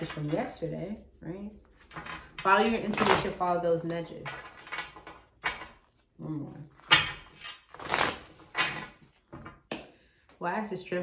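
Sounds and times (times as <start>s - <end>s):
cards being shuffled: 6.7s - 9.2s.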